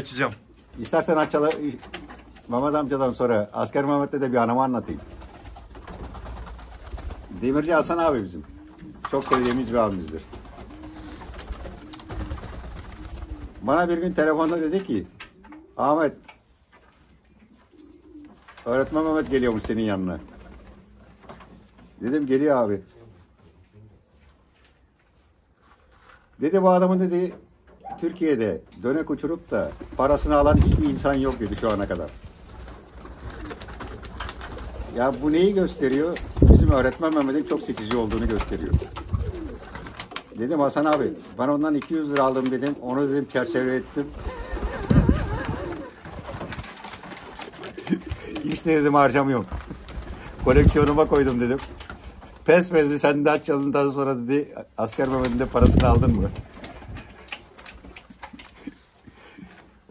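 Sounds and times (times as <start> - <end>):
pigeons cooing softly: 0.0 - 25.3, 27.5 - 52.6.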